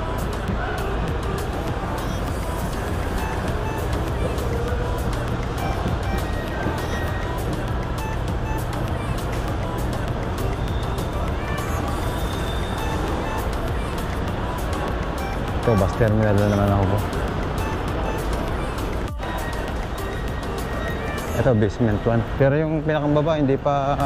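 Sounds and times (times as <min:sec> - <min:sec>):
background music: 0:00.0 - 0:24.0.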